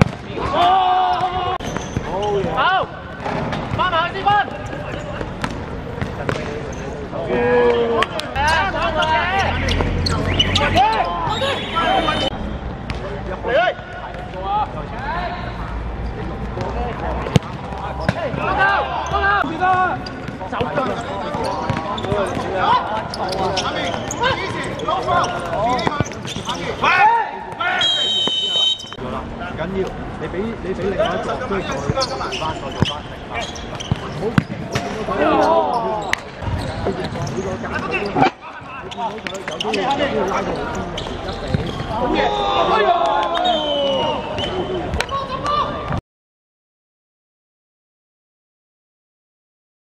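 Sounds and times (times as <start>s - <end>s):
players shouting: 0.3s - 5.1s, 7.2s - 12.4s, 17.2s - 29.0s, 41.2s - 45.9s
ball kicks on hard court: 21.7s - 22.5s.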